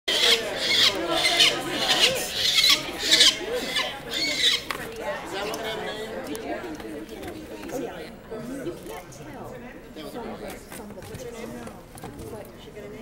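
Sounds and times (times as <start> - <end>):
falcon chick rasping screams: 0.1 - 4.6.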